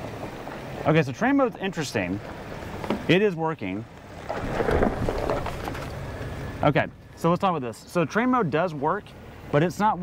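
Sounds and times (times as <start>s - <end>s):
tires crunching over gravel: 3.8s - 6.4s.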